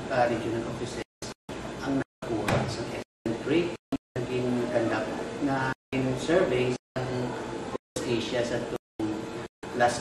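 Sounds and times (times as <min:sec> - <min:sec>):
man speaking: 0:08.0 - 0:10.0.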